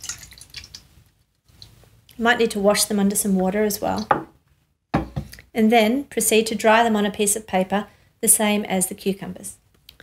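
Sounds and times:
liquid trickling and dripping: 0:00.0 - 0:01.9.

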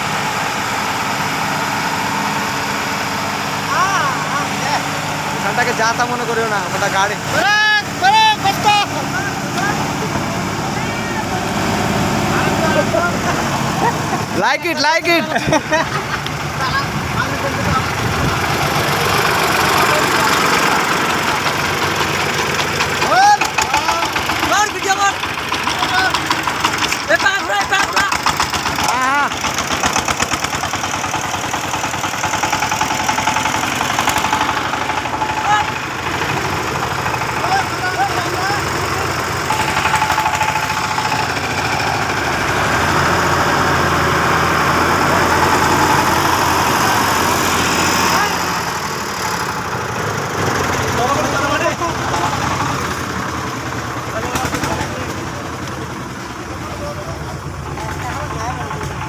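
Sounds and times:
diesel engine running: 0:00.0 - 0:59.0
people's voices: 0:03.3 - 0:59.0.

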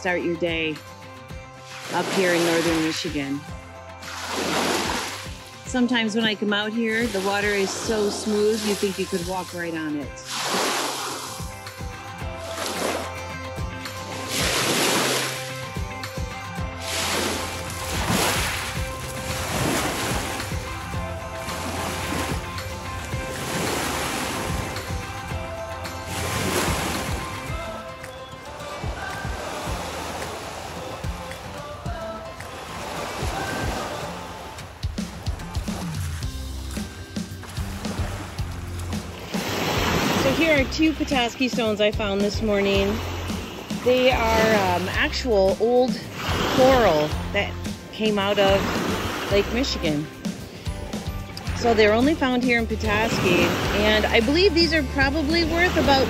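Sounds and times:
background music: 0:00.0 - 0:56.0
waves washing onto pebbles: 0:04.0 - 0:05.7, 0:10.2 - 0:11.7, 0:14.1 - 0:15.7, 0:16.8 - 0:25.0, 0:25.8 - 0:27.6, 0:28.8 - 0:31.8, 0:32.4 - 0:40.7, 0:46.0 - 0:47.2.

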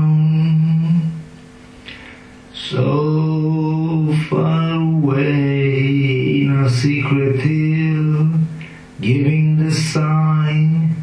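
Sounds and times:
man singing long held notes: 0:00.0 - 0:01.3, 0:02.5 - 0:11.0.

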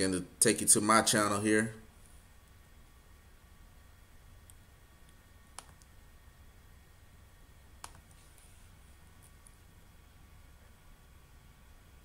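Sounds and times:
faint low room hum: 0:00.0 - 0:12.0
computer mouse clicks: 0:04.4 - 0:06.0, 0:07.8 - 0:08.5.

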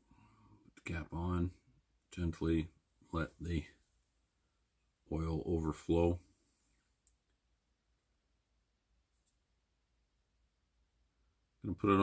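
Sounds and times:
person speaking: 0:00.7 - 0:03.8
faint clicks of small parts: 0:07.0 - 0:07.4.

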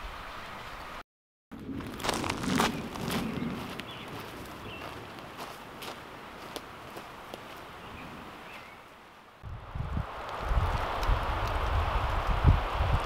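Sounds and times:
footsteps on forest floor: 0:01.8 - 0:08.1.

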